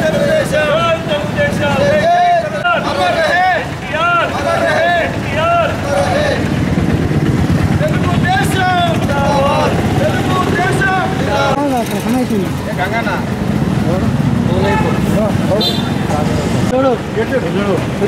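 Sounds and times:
low rumble of street traffic: 0:00.0 - 0:18.0
men talking and calling out: 0:00.0 - 0:18.0.

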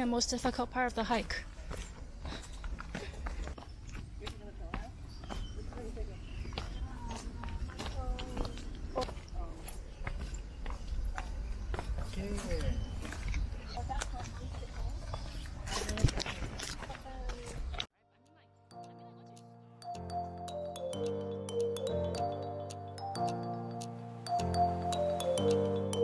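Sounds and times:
footsteps on rocky dirt trail: 0:01.0 - 0:17.9.

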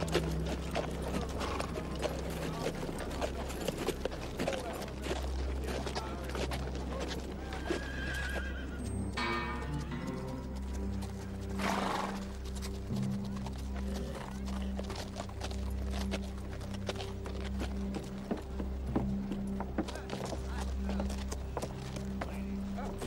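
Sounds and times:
horse hooves clip-clopping on dirt: 0:00.0 - 0:23.0
horse whinnying: 0:07.4 - 0:08.8, 0:11.6 - 0:12.2
film score with low notes: 0:08.6 - 0:23.0.

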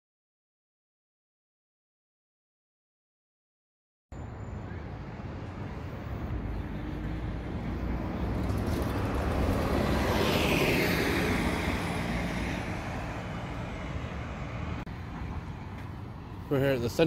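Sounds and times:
city traffic: 0:04.1 - 0:17.0
motor vehicle passing: 0:04.6 - 0:17.0.

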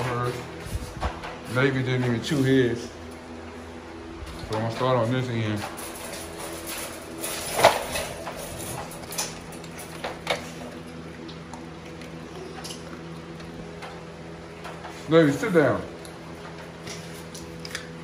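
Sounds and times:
steady low hum: 0:00.0 - 0:18.0
wire crates rattling: 0:04.6 - 0:10.6.

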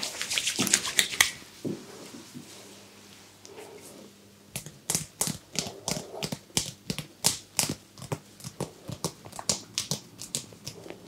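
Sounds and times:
fingers tapping on scalp: 0:04.6 - 0:11.0.

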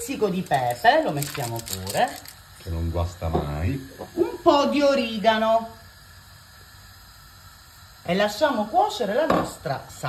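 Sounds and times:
sauce hissing in a frying pan: 0:00.0 - 0:10.0.

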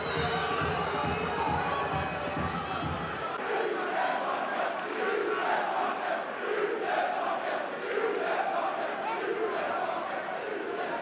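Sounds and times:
stadium crowd chanting: 0:00.0 - 0:11.0.

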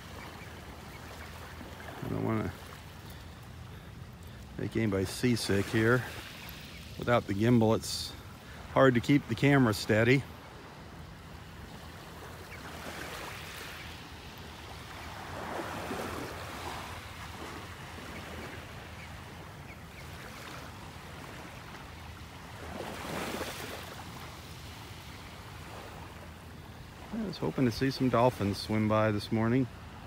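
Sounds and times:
small waves lapping on beach: 0:00.0 - 0:30.0.

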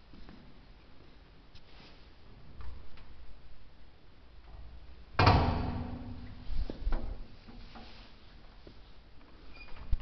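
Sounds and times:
door banging shut: 0:05.2 - 0:06.2.

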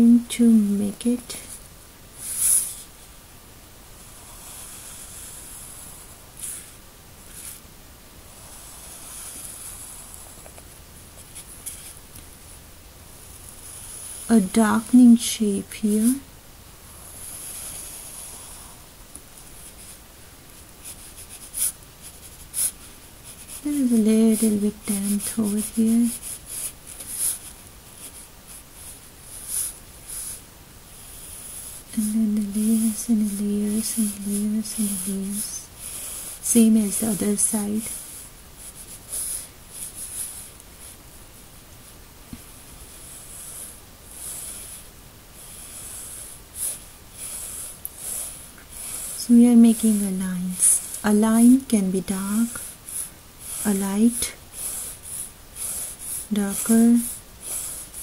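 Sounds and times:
pencil shading on paper: 0:04.0 - 0:07.6, 0:08.3 - 0:12.0, 0:17.0 - 0:18.8, 0:20.8 - 0:30.4, 0:31.0 - 0:40.9, 0:42.8 - 0:58.0.

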